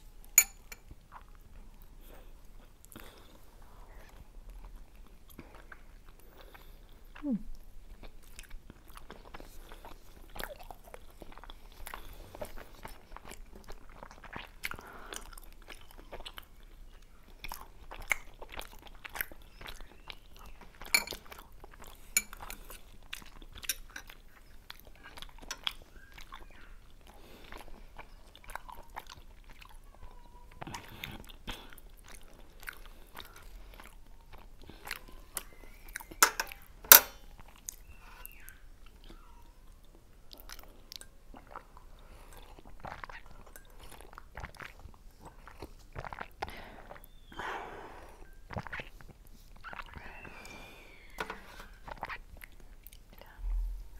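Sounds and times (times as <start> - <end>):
chewing dumplings: 0.0 - 53.9
person humming mm: 7.2 - 7.5.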